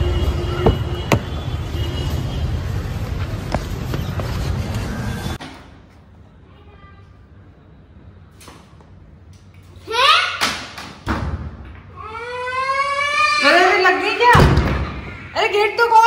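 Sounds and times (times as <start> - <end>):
road traffic hum: 0.0 - 6.5.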